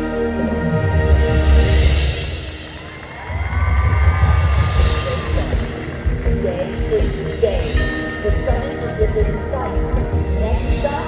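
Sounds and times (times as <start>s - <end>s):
marching band held tones: 0.0s - 11.0s.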